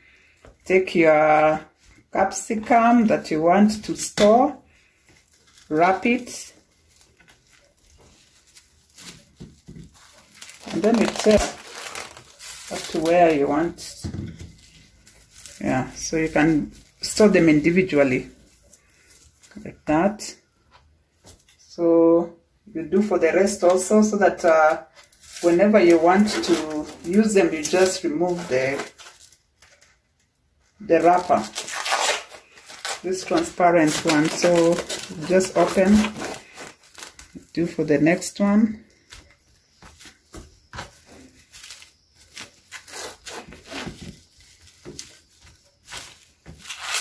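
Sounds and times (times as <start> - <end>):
person speaking: 0.6 - 4.6, 5.7 - 6.6, 10.6 - 12.1, 12.7 - 14.1, 15.5 - 18.4, 21.6 - 29.0, 30.8 - 32.2, 32.9 - 36.7, 37.3 - 38.9
cling film rustling: 3.6 - 19.6, 23.7 - 47.0.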